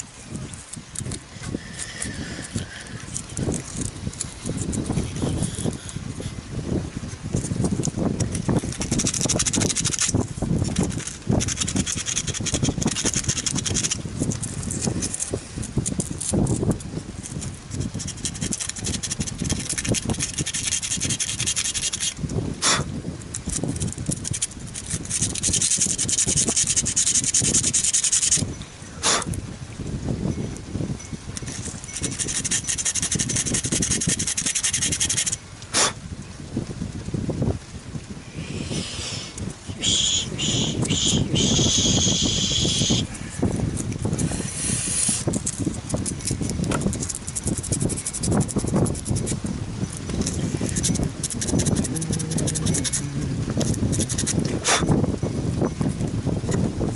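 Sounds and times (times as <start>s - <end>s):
hands rustling wooden parts: 0.0s - 6.1s, 7.3s - 22.2s, 23.2s - 28.4s, 31.3s - 35.4s, 43.4s - 54.6s.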